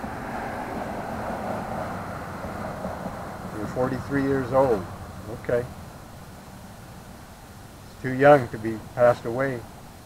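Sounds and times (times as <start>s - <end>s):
distant vehicle rushing: 0.0s - 9.7s.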